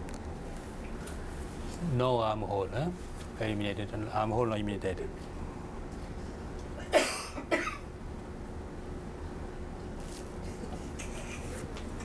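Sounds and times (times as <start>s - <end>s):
person coughing: 6.8s - 7.9s.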